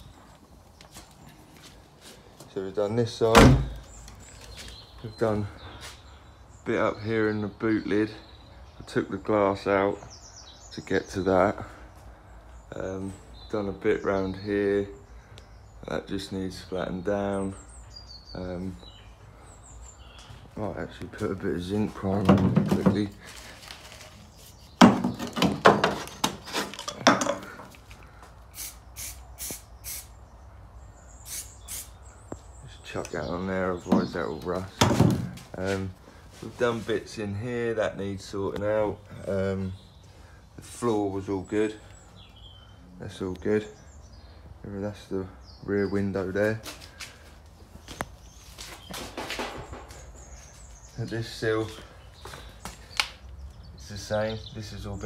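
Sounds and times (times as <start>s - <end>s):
scuffing and rustling: 0.0s - 2.5s, 19.9s - 24.8s, 46.4s - 51.0s
knocks and clatter of objects: 22.2s - 23.2s, 24.8s - 27.7s, 34.8s - 35.4s, 48.8s - 50.4s.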